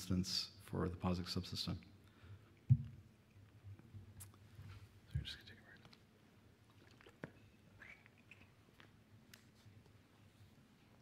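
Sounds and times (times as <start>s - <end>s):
thump on microphone: 2.7s - 2.9s.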